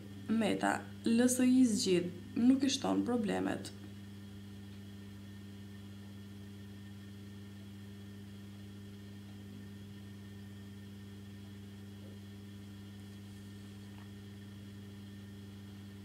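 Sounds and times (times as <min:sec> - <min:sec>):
low electrical hum: 0:00.0 - 0:16.0.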